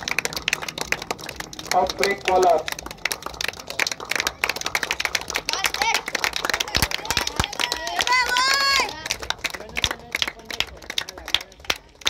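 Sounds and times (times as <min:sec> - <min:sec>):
crowd clapping: 0:00.0 - 0:12.0.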